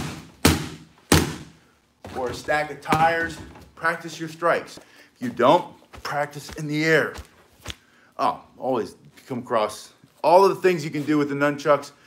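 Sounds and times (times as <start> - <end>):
fan striking punching bag: 0.0 - 1.6.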